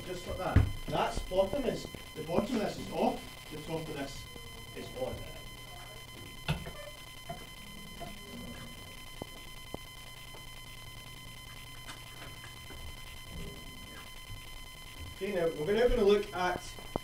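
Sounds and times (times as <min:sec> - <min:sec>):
faint high whine: 0:00.0 - 0:17.0
steady electrical hum: 0:00.0 - 0:17.0.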